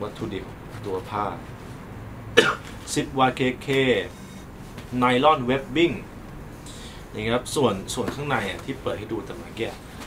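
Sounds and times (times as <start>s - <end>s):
man coughing: 2.4s - 2.8s.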